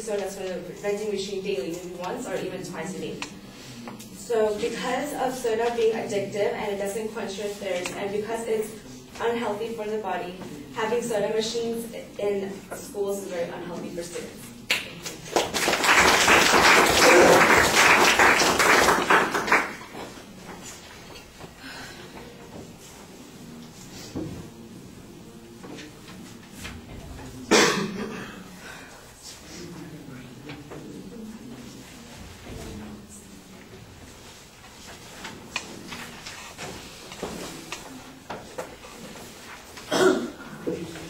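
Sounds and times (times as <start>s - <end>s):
faint room noise: 0.0s - 41.0s
audience clapping: 14.7s - 20.2s.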